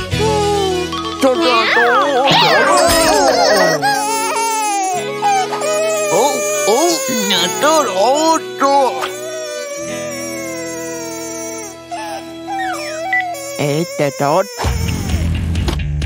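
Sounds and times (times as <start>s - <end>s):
person crying and wailing: 0.0s - 11.1s
background music: 0.0s - 16.0s.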